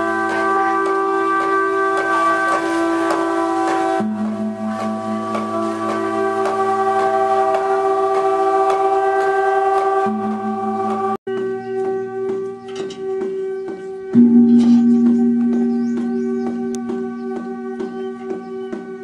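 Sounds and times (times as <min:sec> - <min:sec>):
drone-like music with bell overtones: 0:00.0 - 0:19.0.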